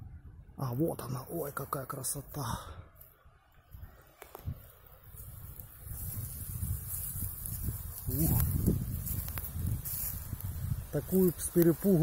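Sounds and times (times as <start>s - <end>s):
wind on microphone: 0.0s - 0.6s, 3.6s - 12.0s
rustling in dry grass: 2.9s - 12.0s.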